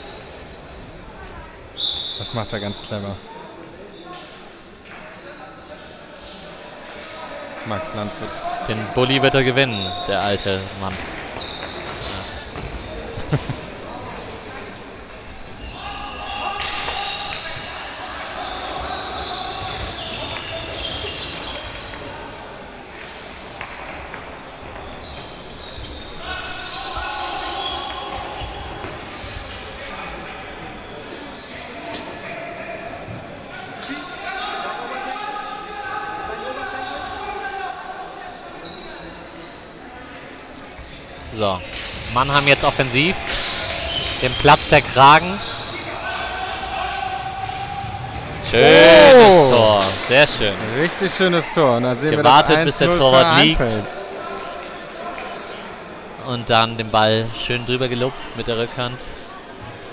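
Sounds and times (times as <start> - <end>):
voices calling: 41.2 - 54.0.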